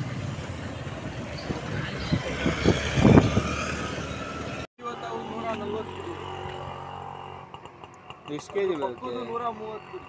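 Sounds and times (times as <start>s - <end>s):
city road traffic: 0.0s - 10.0s.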